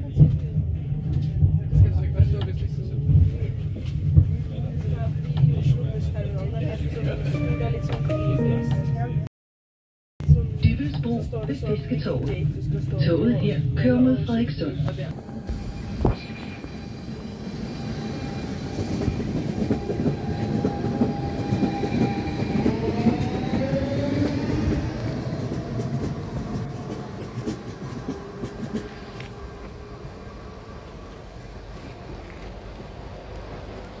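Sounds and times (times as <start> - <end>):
electric train whine: 14.2 - 34.0.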